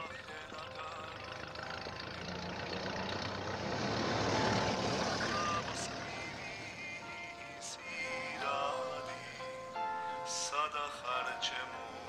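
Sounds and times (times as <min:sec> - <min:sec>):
vehicle passing by: 0:00.0 - 0:07.4.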